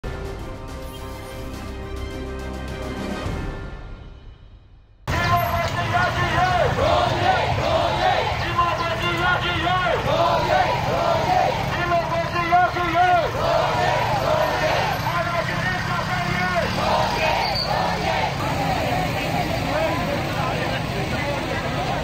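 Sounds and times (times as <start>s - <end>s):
crowd chanting and shouting: 5.1s - 22.0s
motorcycle engines humming: 5.1s - 22.0s.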